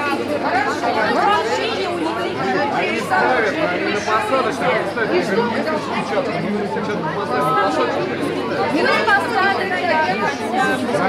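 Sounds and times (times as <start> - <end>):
crowd talking: 0.0 - 11.0.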